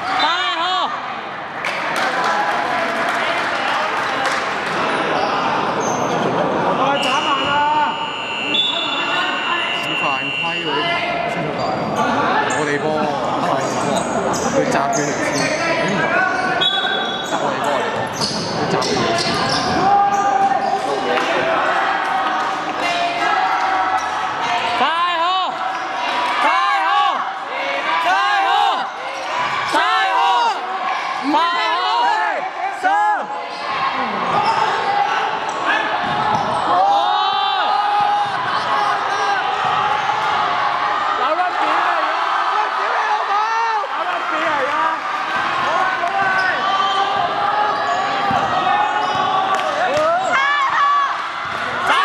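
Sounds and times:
sneakers squeaking: 0:04.9 - 0:10.6, 0:11.2 - 0:12.8, 0:13.5 - 0:24.7, 0:25.5 - 0:26.3, 0:28.9 - 0:29.8, 0:33.3 - 0:37.0, 0:37.6 - 0:40.4, 0:45.2 - 0:50.8
basketball bouncing: 0:48.2 - 0:49.3.

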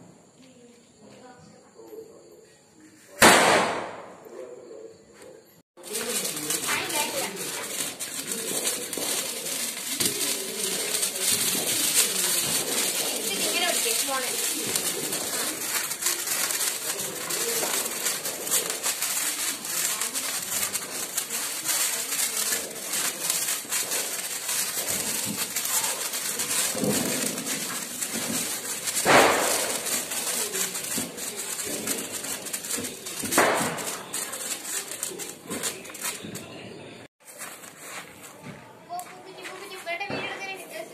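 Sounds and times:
sparklers fizzing crackle: 0:05.8 - 0:36.5, 0:38.9 - 0:40.9
background voices: 0:05.8 - 0:36.7.

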